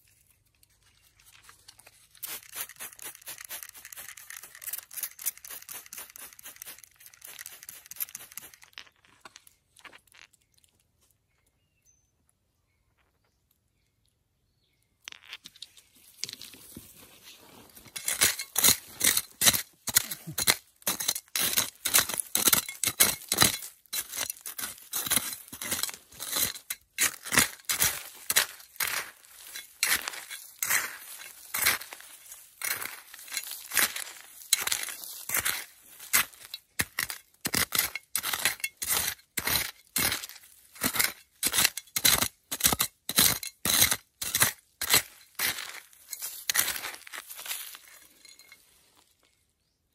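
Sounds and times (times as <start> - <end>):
trowel scraping through soil: 0.0 - 9.1, 16.0 - 48.8
trowel clinking on stones: 1.8 - 10.4, 17.7 - 49.4.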